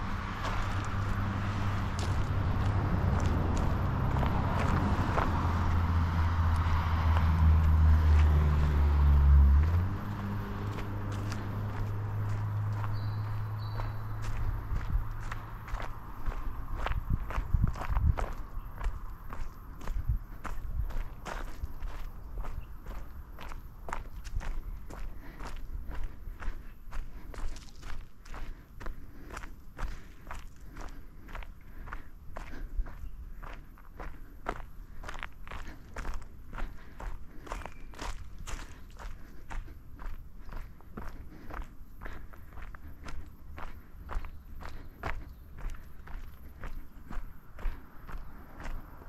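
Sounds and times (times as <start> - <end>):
footsteps walking: 0.0 - 49.0.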